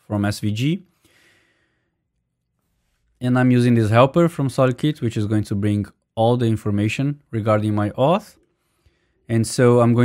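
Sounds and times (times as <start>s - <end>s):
person exhaling: 1.0s - 1.9s.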